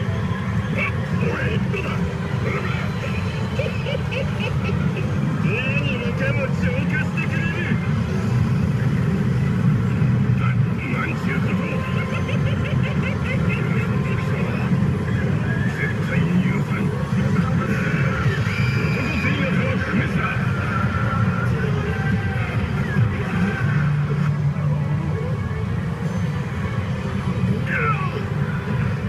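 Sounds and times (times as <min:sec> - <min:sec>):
pachinko parlour din: 0:00.0 - 0:29.0.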